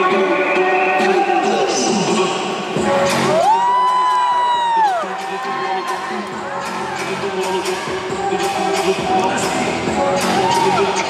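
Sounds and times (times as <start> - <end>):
music in a large hall: 0.0 - 11.0
crowd cheering: 3.2 - 9.4, 10.0 - 11.0.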